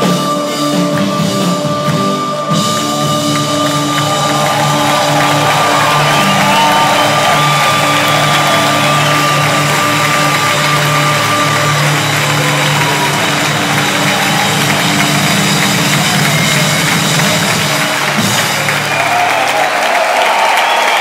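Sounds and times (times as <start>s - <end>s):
live band droning chord: 0.0s - 19.3s
audience noise: 0.0s - 21.0s.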